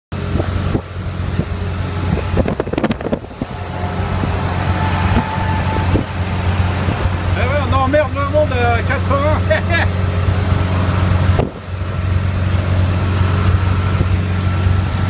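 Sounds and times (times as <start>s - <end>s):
van engine droning: 0.1s - 15.0s
wind and road noise: 0.1s - 15.0s.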